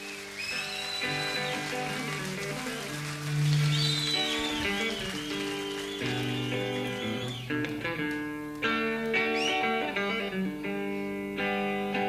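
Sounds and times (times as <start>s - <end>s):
audience whistling: 0.0s - 8.1s, 9.1s - 10.2s
audience noise: 0.0s - 10.0s
electric guitar sustained notes: 0.0s - 12.0s.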